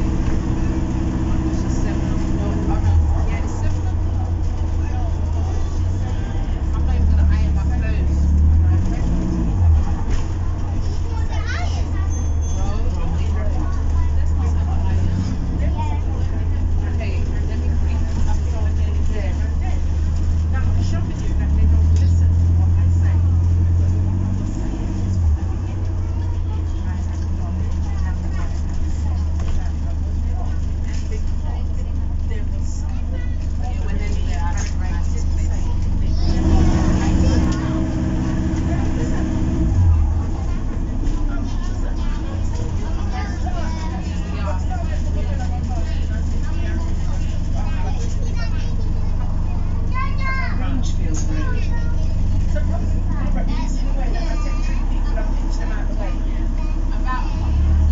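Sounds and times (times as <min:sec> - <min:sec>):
bus interior low rumble: 0:00.0 - 0:57.9.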